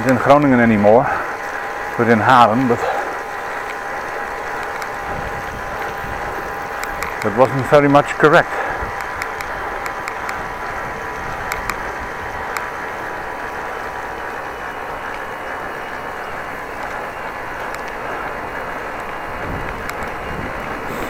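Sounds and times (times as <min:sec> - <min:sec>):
bicycle road and wind noise: 0:00.0 - 0:21.0
light clicks and rattles: 0:14.7 - 0:21.0.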